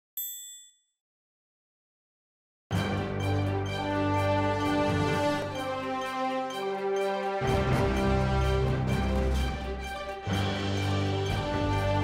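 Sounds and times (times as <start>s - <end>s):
bright chime: 0.2s - 0.8s.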